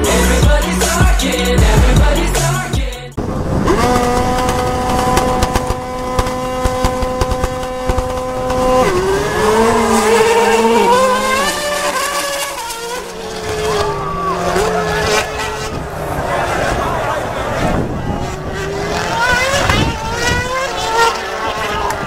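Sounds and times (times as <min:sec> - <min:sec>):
race car engines revving: 0:00.0 - 0:22.0
race cars accelerating through gears: 0:03.2 - 0:22.0.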